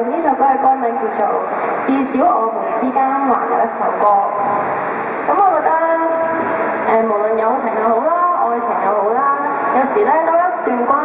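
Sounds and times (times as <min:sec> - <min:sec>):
woman's voice through pa microphone: 0:00.0 - 0:11.0.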